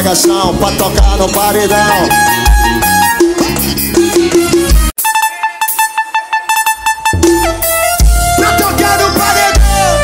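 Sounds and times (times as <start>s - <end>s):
held synthesized horn tone: 4.0s - 10.0s.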